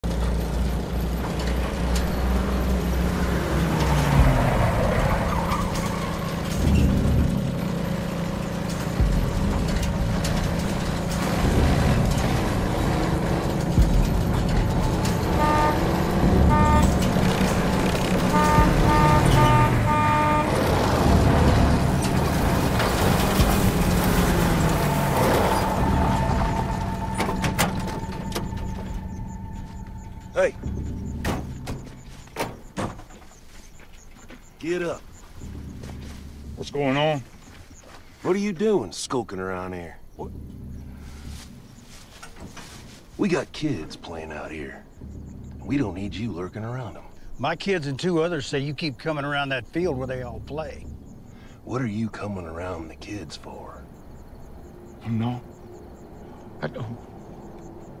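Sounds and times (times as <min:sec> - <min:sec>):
vehicle engines humming: 0:00.0 - 0:58.0
vehicle horn toots: 0:11.3 - 0:23.3, 0:24.5 - 0:32.7.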